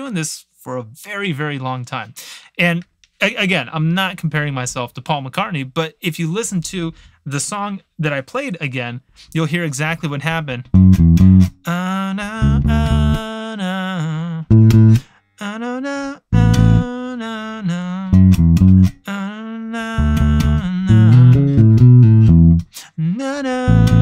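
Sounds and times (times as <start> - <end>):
electric bass line: 10.6 - 11.6, 12.4 - 13.2, 14.5 - 15.1, 16.4 - 16.9, 18.1 - 19.1, 20.0 - 22.7, 23.7 - 24.0
person singing: 11.6 - 24.0.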